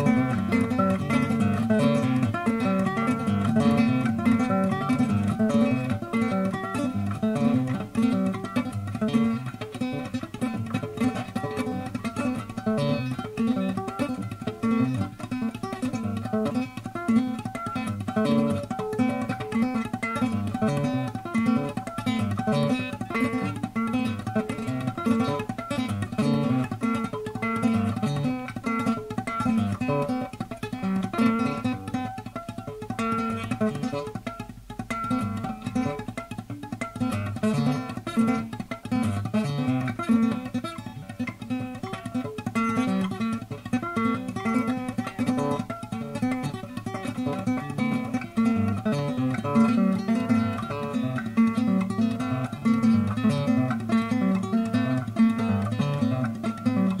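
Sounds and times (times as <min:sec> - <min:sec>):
solo improvised guitar: 0:00.0 - 0:57.0.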